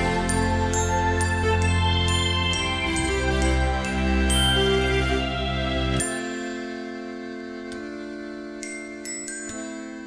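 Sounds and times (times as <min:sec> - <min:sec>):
glockenspiel notes ringing: 0:00.0 - 0:07.6, 0:08.6 - 0:10.0
accordion chord: 0:00.0 - 0:10.0.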